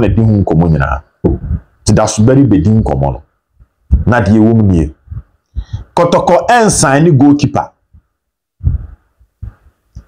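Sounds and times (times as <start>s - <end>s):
low thumps on lapel microphone: 0.8s - 2.1s, 2.8s - 6.0s, 7.6s - 10.0s.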